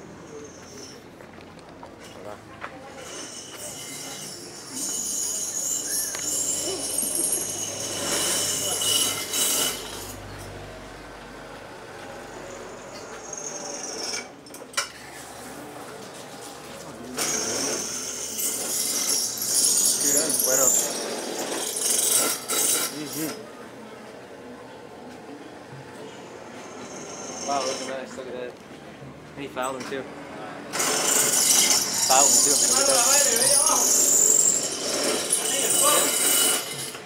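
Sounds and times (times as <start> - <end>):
high-pitched machine noise: 2.9 - 10.7, 11.8 - 14.4, 17.0 - 23.4, 26.2 - 28.2, 30.7 - 37.0.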